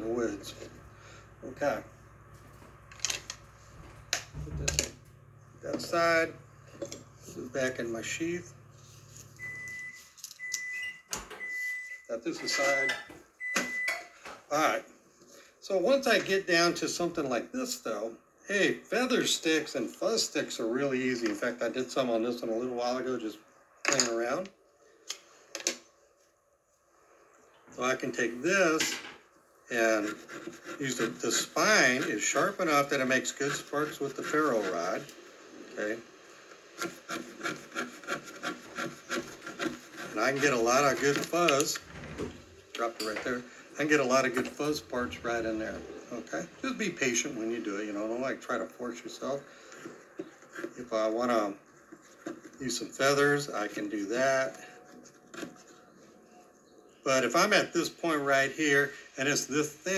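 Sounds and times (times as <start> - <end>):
knife scraping wood: 29.8 - 35.1, 36.6 - 41.7, 49.5 - 53.4, 54.5 - 55.8.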